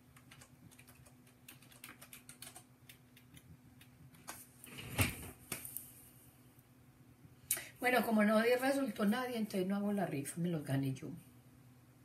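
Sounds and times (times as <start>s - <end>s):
keyboard typing clicks: 0.1s - 3.9s.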